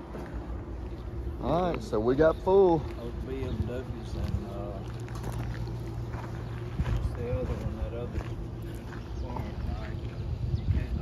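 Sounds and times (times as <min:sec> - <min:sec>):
footsteps on pavement: 0:00.0 - 0:11.0
low machine hum: 0:00.0 - 0:11.0.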